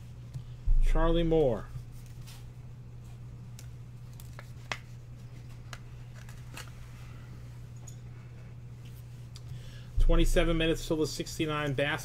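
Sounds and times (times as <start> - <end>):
low electrical hum: 0.0 - 12.0
cards clicking and rustling: 3.5 - 6.8.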